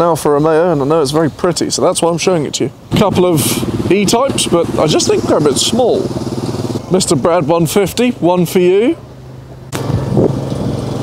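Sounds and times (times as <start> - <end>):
wind noise on microphone: 9.7 - 11.0.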